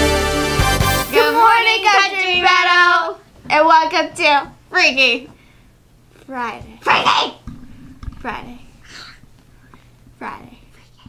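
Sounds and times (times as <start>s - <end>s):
girl whispering: 10.2s - 11.0s.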